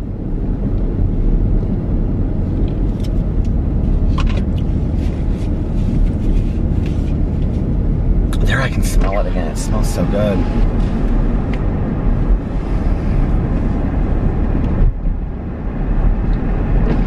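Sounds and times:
car cabin road rumble: 0.0 - 17.0.

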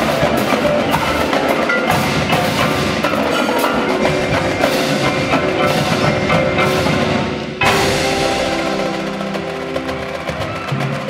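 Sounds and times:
mallet keyboards chord ringing: 0.0 - 10.4.

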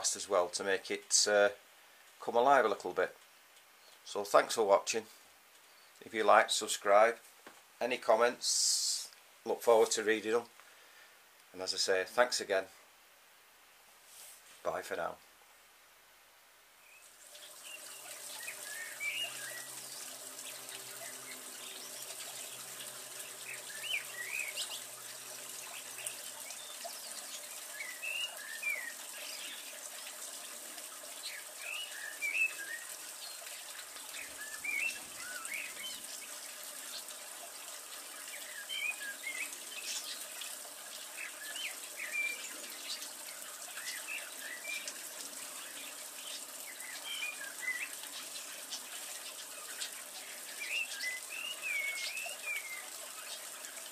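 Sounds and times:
steady background hiss: 0.0 - 53.9
songbird whistling phrases: 17.6 - 19.8, 23.5 - 24.8, 27.7 - 29.5, 31.3 - 33.0, 34.2 - 36.0, 41.2 - 42.5, 50.6 - 52.9.

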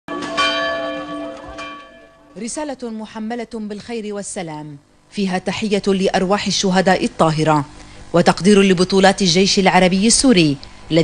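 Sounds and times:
church bell ringing: 0.1 - 2.6.

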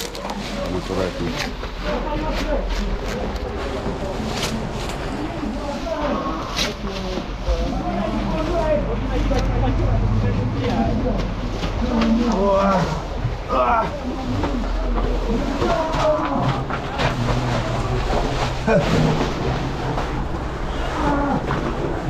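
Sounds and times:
people talking indistinctly: 0.0 - 21.4
low steady rumble: 0.0 - 22.0.

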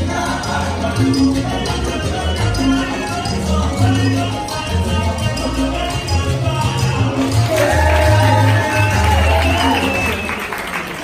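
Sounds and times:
person singing: 0.0 - 9.9
salsa music: 0.0 - 11.0
applause: 7.3 - 11.0.

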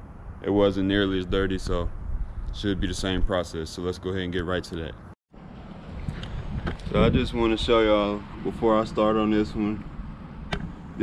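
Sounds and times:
wind noise on microphone: 0.0 - 3.5, 5.9 - 8.6
man talking: 0.4 - 1.9, 2.6 - 5.0, 6.9 - 9.8.

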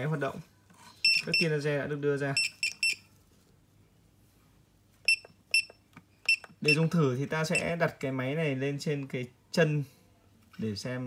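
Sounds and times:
keypad beeps: 1.0 - 1.5, 2.4 - 3.0, 5.0 - 6.9.

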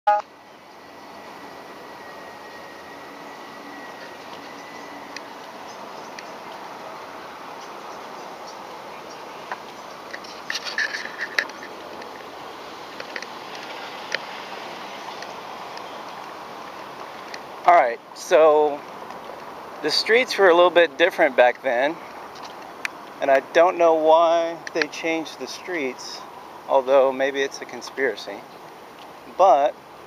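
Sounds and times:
street noise: 0.1 - 30.0.

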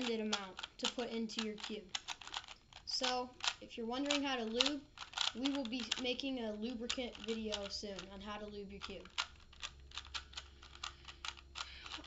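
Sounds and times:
plastic puzzle cube clicking: 0.0 - 12.0.

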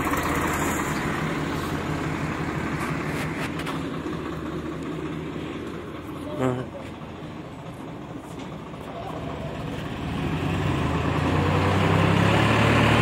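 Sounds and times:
tractor diesel engine under load: 0.0 - 13.0.

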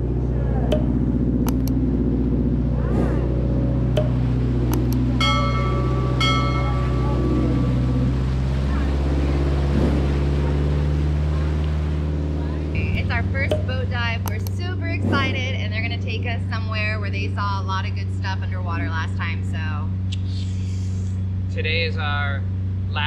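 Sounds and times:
motorboat engine running: 0.0 - 23.0
rush of boat wake: 5.1 - 13.5
short high ringing tones: 5.2 - 8.5.

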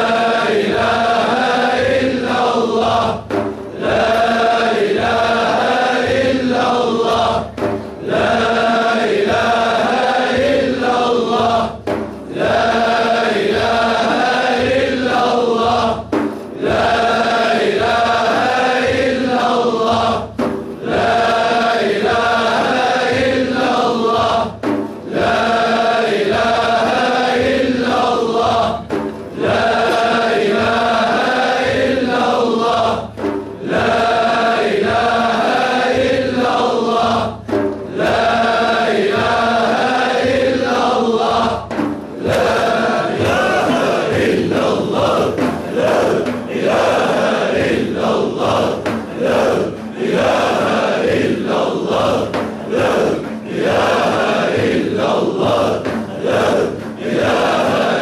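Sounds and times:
group of voices chanting: 0.0 - 58.0.

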